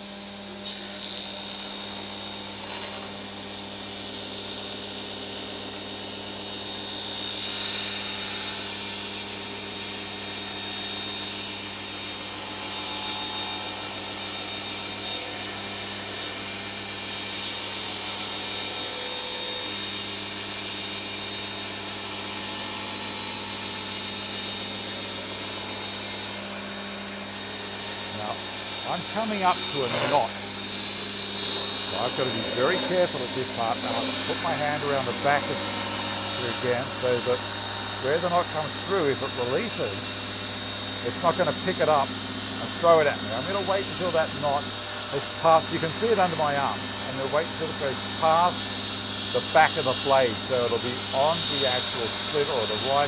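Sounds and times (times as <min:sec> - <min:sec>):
table saw ripping timber: 0:07.1 - 0:53.0.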